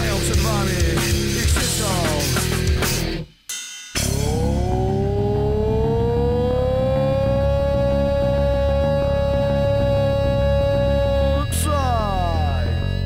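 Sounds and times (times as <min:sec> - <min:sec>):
chugging bass and drums: 0:00.0 - 0:03.3, 0:04.0 - 0:06.6
held electric guitar note: 0:04.1 - 0:13.0.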